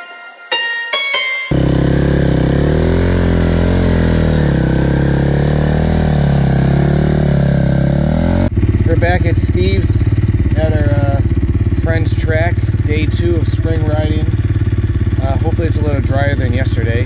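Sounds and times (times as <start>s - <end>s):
plucked guitar note: 0.0s - 2.8s
dirt bike engine revving: 1.5s - 17.0s.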